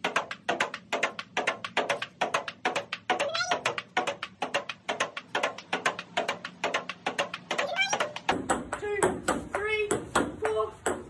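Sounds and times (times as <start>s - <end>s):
table tennis ball clicks: 0.0s - 11.0s.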